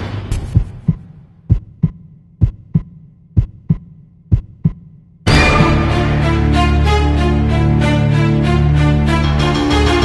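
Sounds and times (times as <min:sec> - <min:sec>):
heartbeat double thumps: 0:00.3 - 0:05.2.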